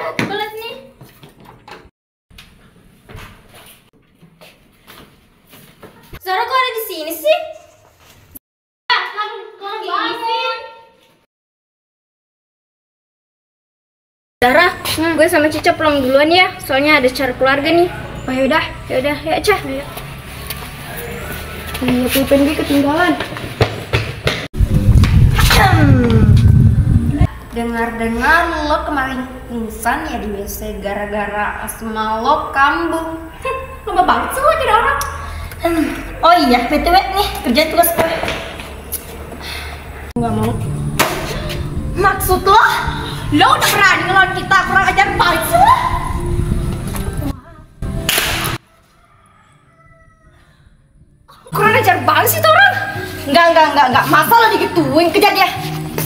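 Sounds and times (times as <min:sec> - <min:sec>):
steady low hum: 0:24.6 - 0:27.4
slap across the face: 0:41.0 - 0:41.4, 0:48.1 - 0:48.6.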